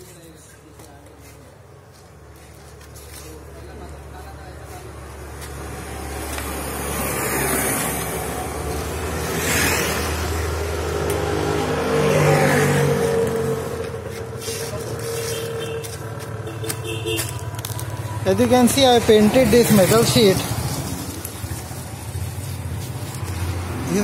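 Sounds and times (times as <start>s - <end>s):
motor vehicle passing by: 2.4s - 24.0s.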